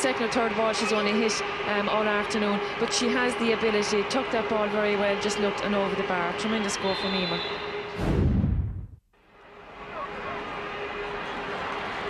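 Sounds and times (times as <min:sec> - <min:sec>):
stadium crowd noise: 0:00.0 - 0:08.0, 0:09.3 - 0:12.0
low boom: 0:08.0 - 0:09.0.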